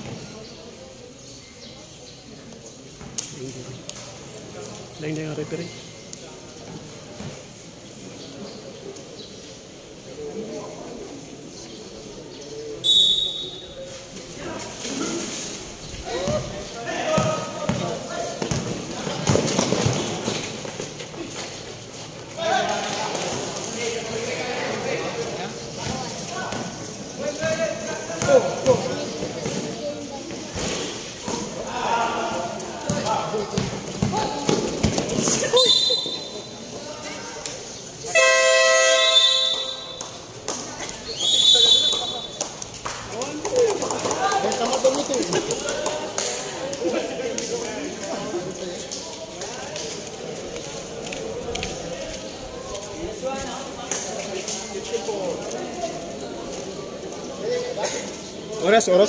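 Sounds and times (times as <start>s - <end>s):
spectators chattering and shouting: 0.0s - 59.0s
shrill referee whistle blasts: 12.8s - 13.6s, 35.6s - 36.3s, 38.1s - 39.9s, 41.2s - 42.2s
loud horn blast: 38.1s - 39.9s.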